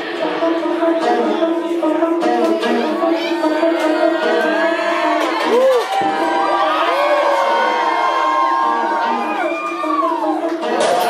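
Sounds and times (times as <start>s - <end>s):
club music: 0.0s - 11.0s
crowd cheering and whooping: 3.2s - 11.0s.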